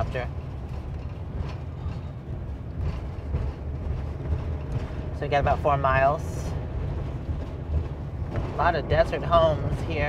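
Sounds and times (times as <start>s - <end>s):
road and engine rumble: 0.0s - 10.0s.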